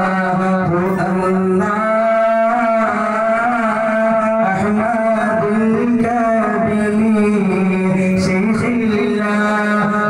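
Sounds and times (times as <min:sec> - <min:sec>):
person singing long held notes: 0:00.0 - 0:10.0.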